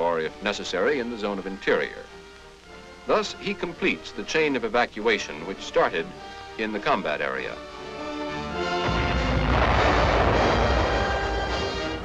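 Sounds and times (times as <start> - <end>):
music: 0.0 - 12.0
large explosion: 8.8 - 12.0.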